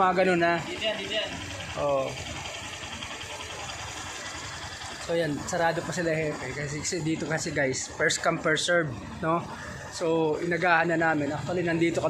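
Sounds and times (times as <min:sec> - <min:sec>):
small motorcycle engine idling: 0:00.0 - 0:12.0.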